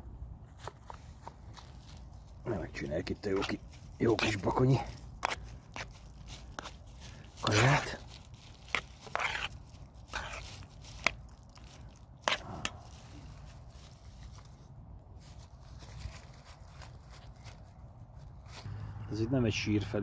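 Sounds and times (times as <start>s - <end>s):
low background hum: 0.0s - 20.0s
metal spoon scraping a pan: 8.7s - 9.5s.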